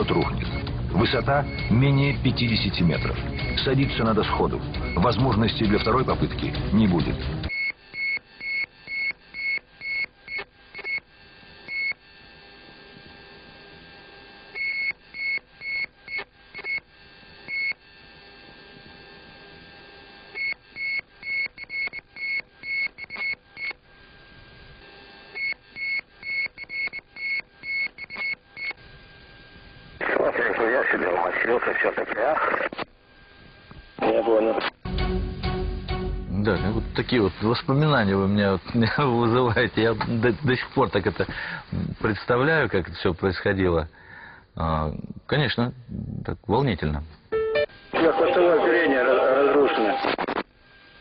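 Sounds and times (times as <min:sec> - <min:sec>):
cockpit warning tone beeping: 0:00.0 - 0:06.3, 0:47.3 - 0:48.3
radio hiss: 0:28.9 - 0:34.8, 0:36.9 - 0:43.8, 0:47.7 - 0:51.0.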